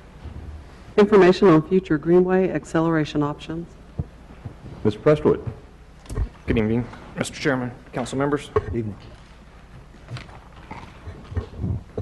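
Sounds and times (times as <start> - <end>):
microphone system hum: 0.0 - 6.7, 9.8 - 12.0.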